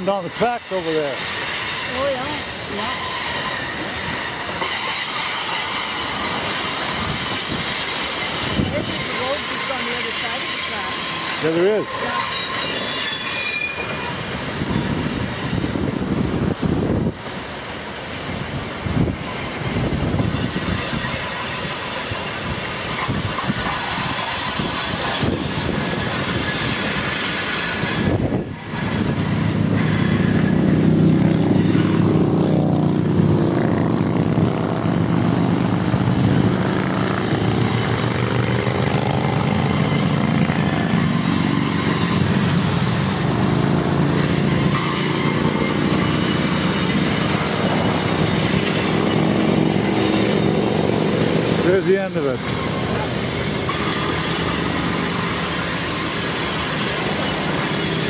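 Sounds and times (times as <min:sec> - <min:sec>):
diesel locomotive low drone: 0:00.0 - 0:58.0
river rushing: 0:00.0 - 0:58.0
wind rushing: 0:13.8 - 0:58.0.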